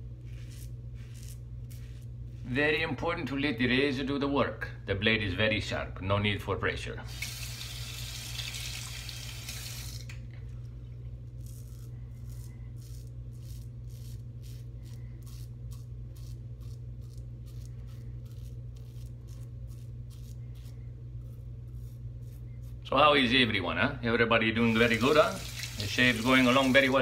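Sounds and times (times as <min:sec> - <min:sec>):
razor scraping stubble: 0:00.0 - 0:02.7, 0:11.2 - 0:23.0, 0:24.6 - 0:27.0
steady low hum: 0:00.0 - 0:08.3, 0:09.7 - 0:27.0
tap water running: 0:07.1 - 0:10.2, 0:24.7 - 0:27.0.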